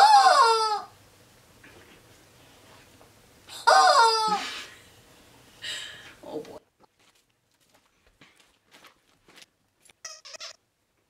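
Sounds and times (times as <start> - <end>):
squeaky dog toy squeaking: 10.0 - 10.6.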